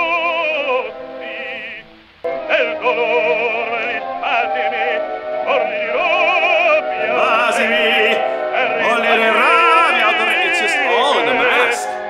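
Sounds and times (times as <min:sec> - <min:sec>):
operatic baritone singing: 0:00.0 - 0:12.0
orchestral accompaniment: 0:04.4 - 0:12.0.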